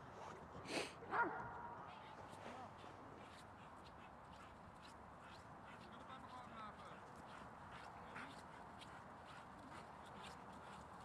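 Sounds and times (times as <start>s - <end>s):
dog barking: 1.1s - 1.7s.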